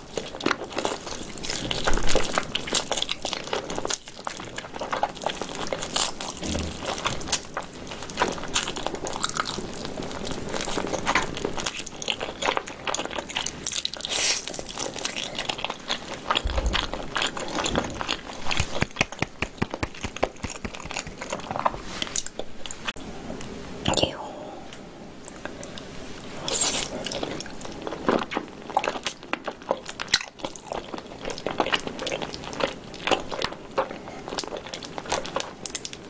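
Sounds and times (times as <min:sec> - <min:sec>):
wet chewing and gnawing: 0:00.0 - 0:23.0, 0:25.2 - 0:36.0.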